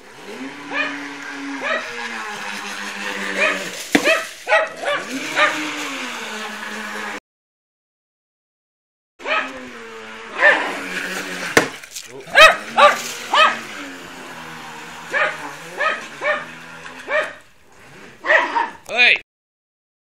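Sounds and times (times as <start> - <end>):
electric motor humming: 0.0 - 7.2, 9.2 - 18.2
dog barking: 0.7 - 1.0, 1.6 - 2.0, 3.3 - 5.6, 9.2 - 9.6, 10.4 - 10.7, 12.3 - 13.7, 15.1 - 17.4, 18.2 - 18.8.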